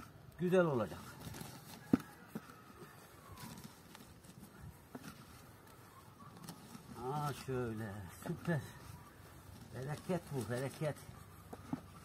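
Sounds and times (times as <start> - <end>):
hands working soil in plastic bags: 0.0 - 12.0.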